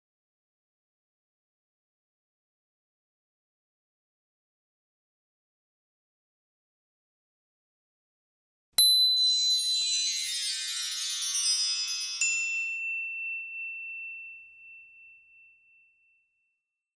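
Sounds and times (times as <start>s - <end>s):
shimmering chimes cascade: 9.0s - 13.4s
bright high ding: 11.4s - 16.6s.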